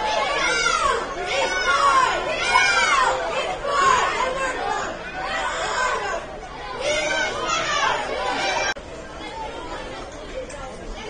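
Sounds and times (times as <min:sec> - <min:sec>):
background chatter: 0:00.0 - 0:11.0
people talking: 0:00.0 - 0:11.0.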